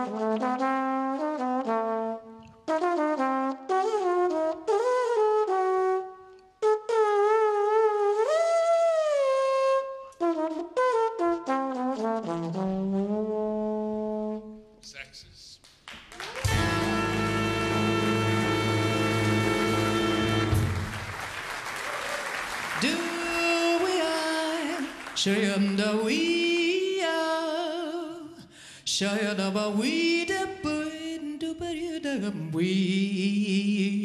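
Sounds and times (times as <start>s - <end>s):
solo trombone: 0.0s - 14.7s, 16.4s - 21.2s
audience applauding: 15.6s - 26.4s.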